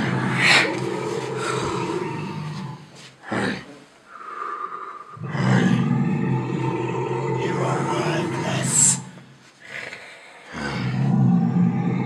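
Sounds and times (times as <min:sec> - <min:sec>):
deep drawn-out dragon roar: 0:00.0 - 0:03.7, 0:05.2 - 0:12.0.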